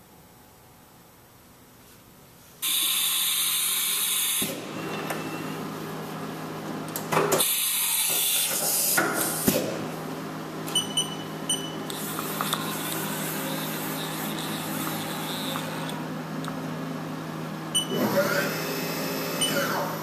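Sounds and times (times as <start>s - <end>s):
steady machine hum: 0.0s - 8.1s, 8.7s - 20.0s.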